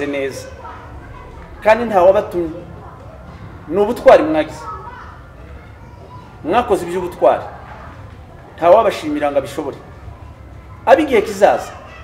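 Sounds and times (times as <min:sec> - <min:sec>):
faint background voices: 0:00.0 - 0:12.0
man speaking into a microphone: 0:03.7 - 0:04.6, 0:06.4 - 0:07.5, 0:08.6 - 0:09.8, 0:10.9 - 0:11.7.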